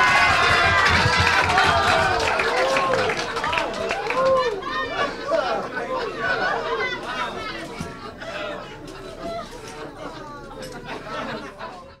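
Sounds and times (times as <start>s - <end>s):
voices talking and chattering: 1.6s - 12.0s.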